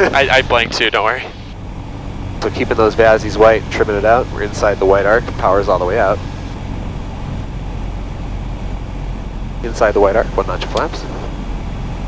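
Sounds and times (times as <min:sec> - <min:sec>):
air noise in cabin: 0:00.0 - 0:12.0
aircraft engine idling: 0:00.0 - 0:12.0.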